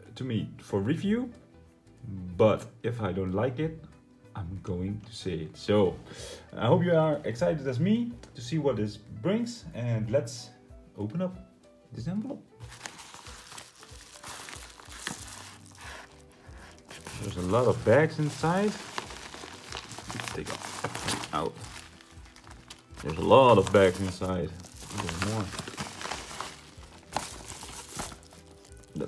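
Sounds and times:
paper envelope crinkling: 0:12.6 - 0:29.0
sharp crackle: 0:12.7 - 0:29.0.

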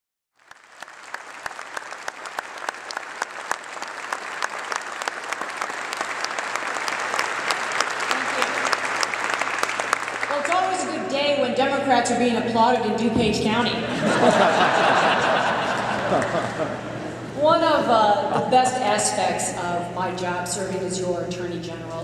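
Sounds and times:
audience applauding: 0:00.4 - 0:11.0, 0:14.0 - 0:17.3.

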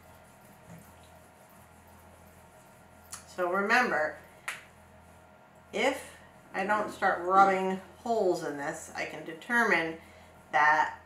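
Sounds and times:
fingertips rubbing wet paper: 0:00.0 - 0:07.7.

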